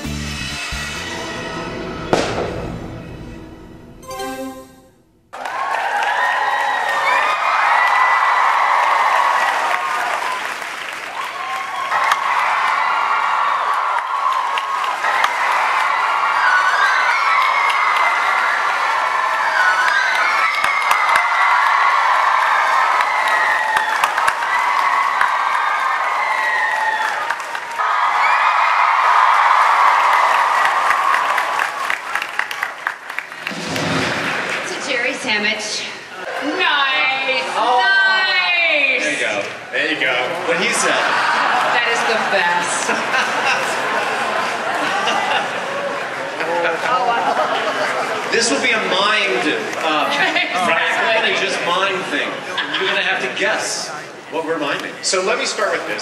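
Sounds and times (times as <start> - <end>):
live band playing: 0.0 - 5.1
audience applauding: 5.3 - 35.3, 39.0 - 53.4.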